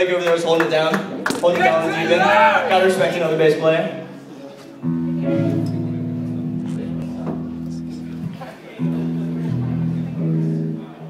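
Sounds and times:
electric guitar chords ringing: 1.7 - 11.0.

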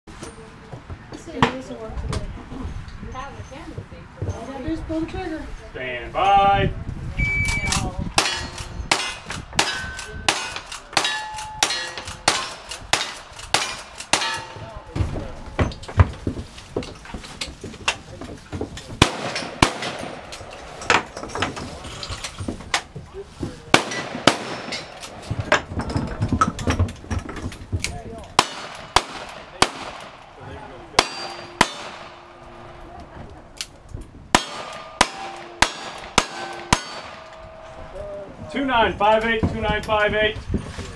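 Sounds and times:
steel targets clanging: 7.8 - 15.0, 19.0 - 22.5, 23.8 - 27.4, 30.9 - 32.8, 34.3 - 38.7
gunshots: 8.2 - 14.8, 19.0 - 21.3, 23.7 - 25.8, 28.3 - 32.8, 34.3 - 37.6.

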